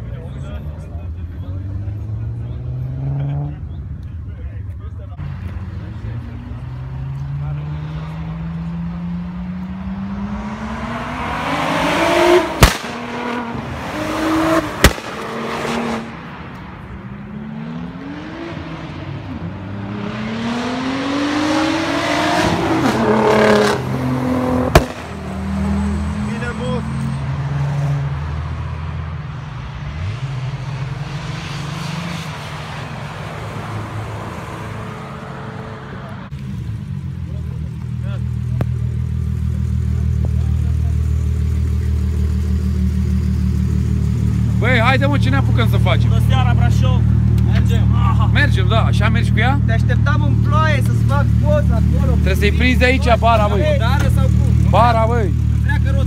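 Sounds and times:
car engine revving: 1.4 - 3.8, 5.2 - 56.0
loud exhaust cracks: 12.5 - 13.2.

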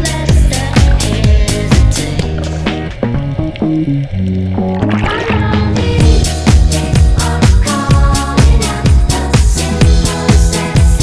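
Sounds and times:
electronic dance music: 0.0 - 3.0, 4.8 - 11.0
kick drum beat: 0.0 - 3.3, 5.1 - 11.0
held bass and synth notes: 0.0 - 11.0.

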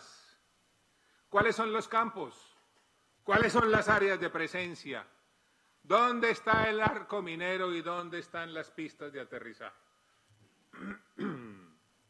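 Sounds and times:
man clearing his throat: 10.7 - 11.8.

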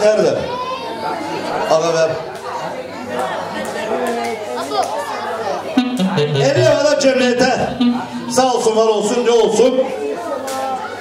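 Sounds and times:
crowd chatter: 0.0 - 11.0
music: 5.8 - 9.2
man speaking over pa: 6.2 - 9.8.

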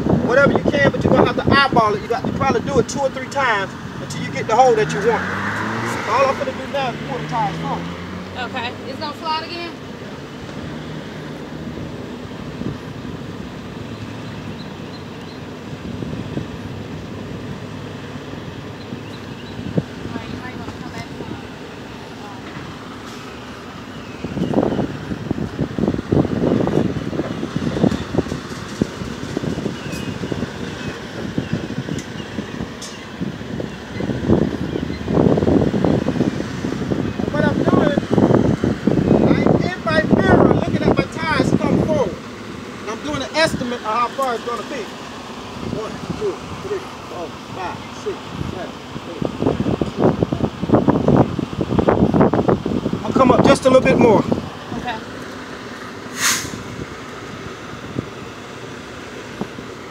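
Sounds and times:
loud rough uneven noise: 0.0 - 12.9, 15.5 - 49.2
diesel truck engine running: 0.0 - 59.9.

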